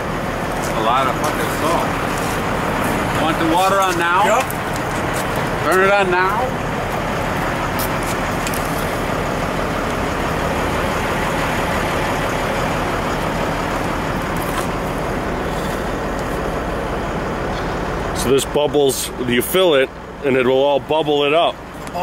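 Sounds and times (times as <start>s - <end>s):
low pump hum: 0.0s - 20.3s.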